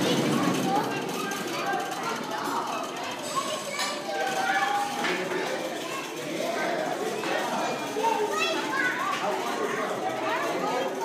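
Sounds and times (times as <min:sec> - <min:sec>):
young children talking and calling out: 0:00.0 - 0:11.0.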